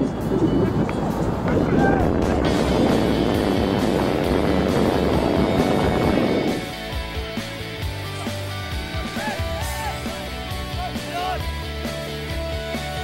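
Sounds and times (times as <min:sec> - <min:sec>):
low rumble: 0:00.0 - 0:07.6
background music: 0:00.0 - 0:13.0.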